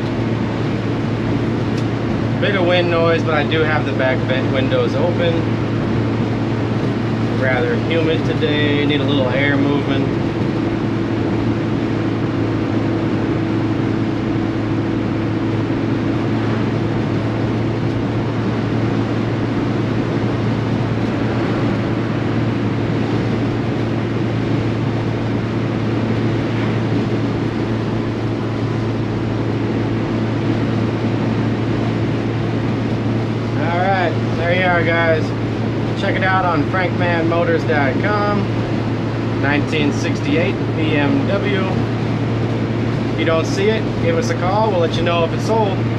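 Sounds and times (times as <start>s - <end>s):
car engine droning: 0.0s - 45.9s
road and wind noise: 0.0s - 45.9s.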